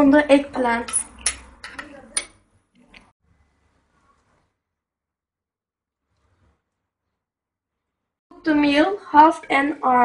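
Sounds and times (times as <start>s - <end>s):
metal spoon clinking glass bowl: 0.8s - 2.4s.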